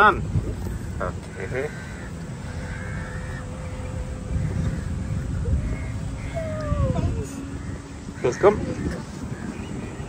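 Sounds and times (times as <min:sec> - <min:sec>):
golf cart rolling on pavement: 0:00.0 - 0:10.0
thin electric whine: 0:00.0 - 0:10.0.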